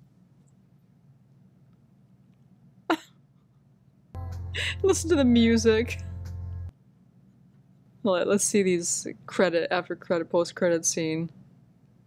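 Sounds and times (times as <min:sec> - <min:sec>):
person coughing: 0:02.9 - 0:03.2.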